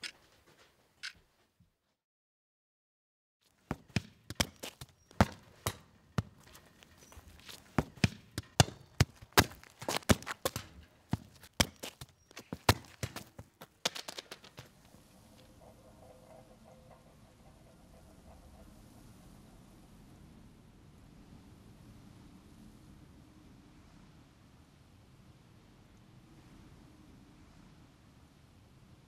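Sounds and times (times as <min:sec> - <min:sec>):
faint steady background noise: 0:03.4 - 0:29.0.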